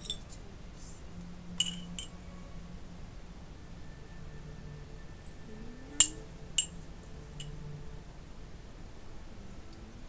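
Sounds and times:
spoon clinking against glass jar: 0.0 - 0.3, 1.6 - 2.1, 6.0 - 6.8.

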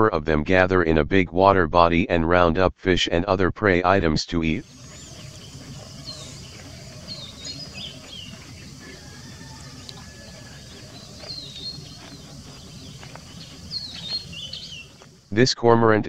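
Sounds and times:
birds chirping: 4.6 - 15.5
low background rumble: 4.6 - 16.0.

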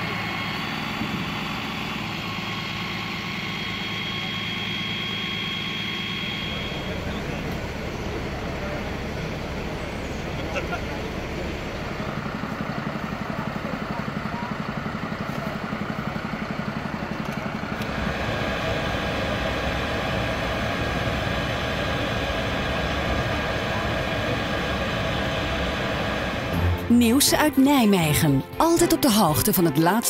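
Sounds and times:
whining tones: 0.0 - 15.0, 17.2 - 26.9
ventilation fan drone: 0.0 - 27.2
diesel engines idling: 0.0 - 30.0.

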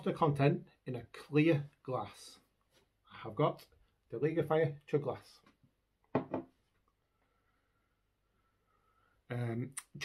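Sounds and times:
man speaking: 0.0 - 5.5, 9.3 - 10.0.

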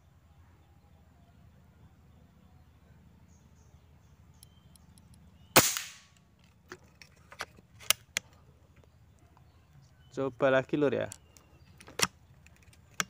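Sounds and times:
air rifle shot: 5.6 - 6.1.

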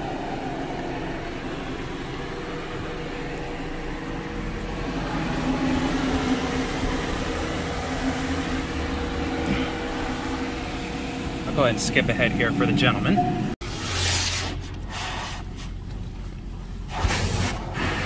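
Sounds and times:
car engine running: 0.0 - 13.8, 14.6 - 18.0.

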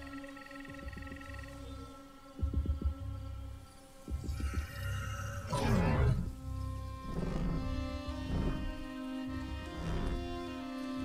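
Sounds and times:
low held musical drone: 0.0 - 11.0.

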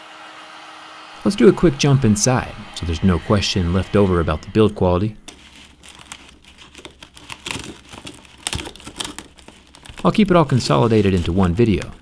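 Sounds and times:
cracked glass crackling and snapping: 5.3 - 10.6.

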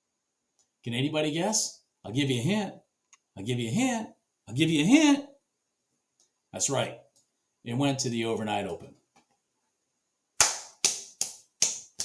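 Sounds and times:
hand claps with room echo: 10.4 - 12.0.

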